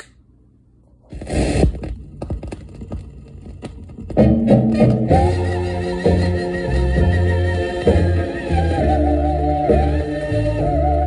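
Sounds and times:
music: 0:01.1 - 0:11.0.

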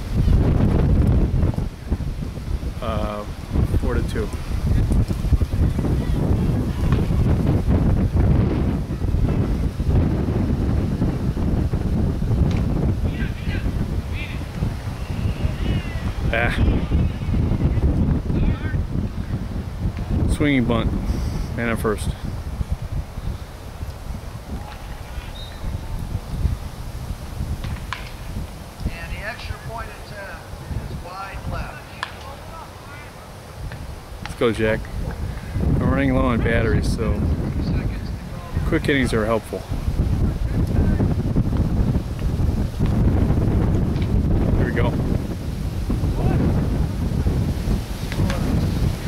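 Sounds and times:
wind buffeting microphone: 0:00.0 - 0:49.0
distant voices calling: 0:11.2 - 0:36.4.

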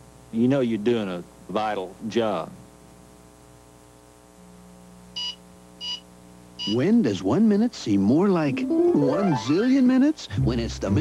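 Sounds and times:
microwave keypad beeps: 0:05.2 - 0:06.0, 0:06.6 - 0:06.9.

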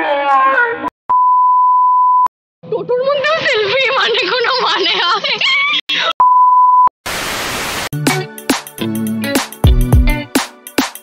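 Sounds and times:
censor bleep: 0:01.1 - 0:02.3, 0:06.2 - 0:06.9.

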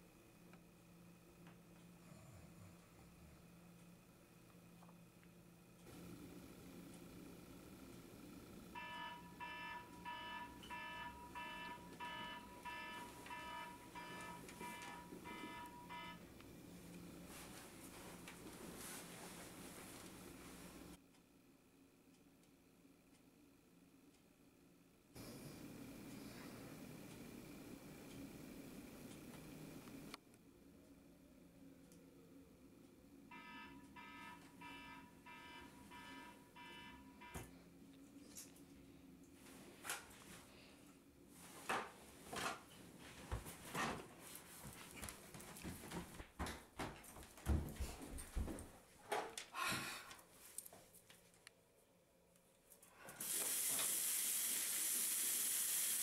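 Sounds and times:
alarm clock beeping: 0:08.7 - 0:16.3, 0:33.3 - 0:37.5.

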